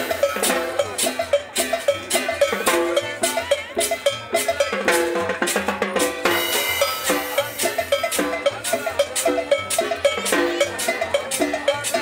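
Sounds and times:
congas and timbales beat: 0:00.0 - 0:12.0
cowbell strokes: 0:00.0 - 0:12.0.

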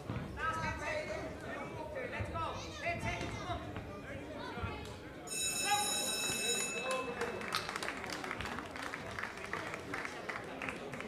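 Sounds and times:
crowd voices: 0:00.4 - 0:11.0
boxing bell ringing: 0:05.3 - 0:07.6.

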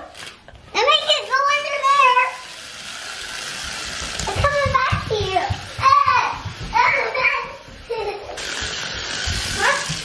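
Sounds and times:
toy truck motor whirring: 0:00.1 - 0:05.6, 0:08.3 - 0:10.0
child's voice: 0:00.7 - 0:02.4, 0:04.2 - 0:08.1, 0:09.5 - 0:10.0.

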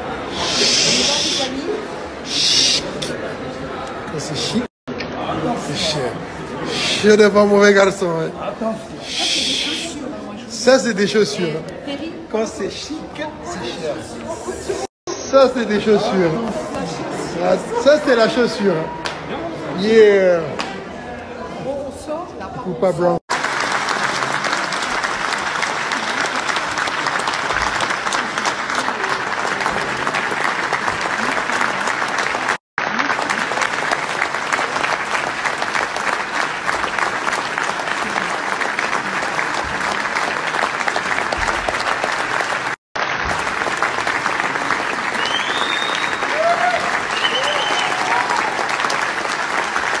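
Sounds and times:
audience applause: 0:23.3 - 0:50.0.

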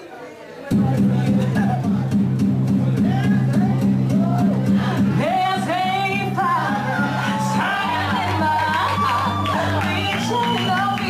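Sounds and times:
backing track with bass line: 0:00.7 - 0:11.0
woman singing into microphone: 0:04.7 - 0:11.0.

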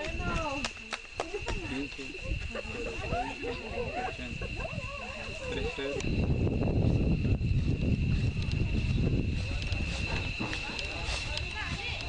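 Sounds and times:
faint indistinct voices: 0:00.0 - 0:12.0
high-pitched whine: 0:00.0 - 0:12.0.

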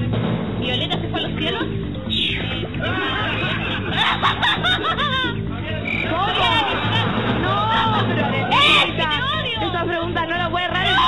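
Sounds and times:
background music: 0:00.0 - 0:11.0
voices calling out: 0:02.0 - 0:09.8.

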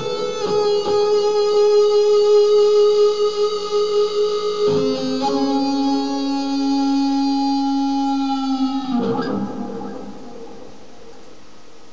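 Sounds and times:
amplifier hiss: 0:00.0 - 0:11.9
sustained electric guitar note: 0:04.2 - 0:11.2.

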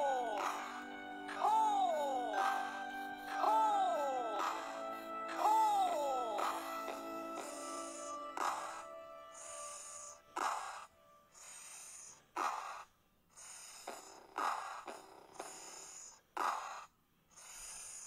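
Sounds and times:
voice hissing s sound: 0:00.0 - 0:12.8.

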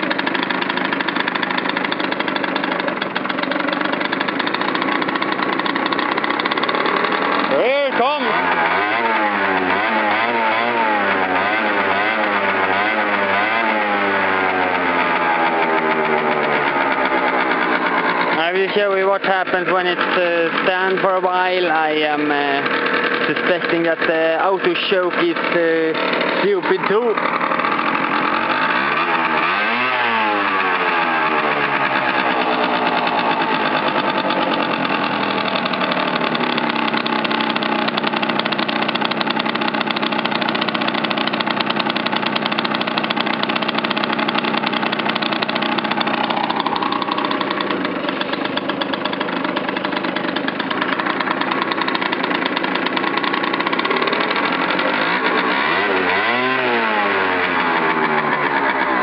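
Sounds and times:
scooter engine running: 0:00.0 - 0:59.0.

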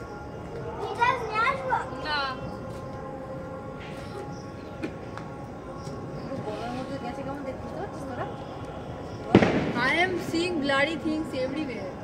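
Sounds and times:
firecracker bang: 0:09.2 - 0:10.7.

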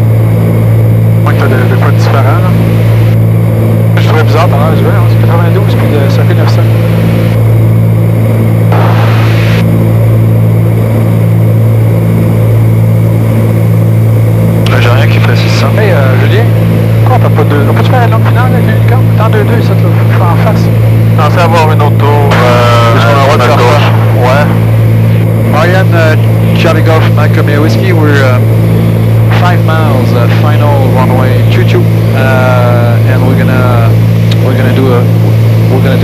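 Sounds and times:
airplane cabin engine drone: 0:00.0 - 0:36.0.

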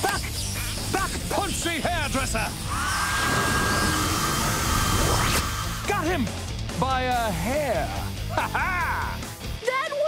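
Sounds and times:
rushing wind with whine: 0:02.0 - 0:06.1
rising whoosh: 0:02.4 - 0:06.6.

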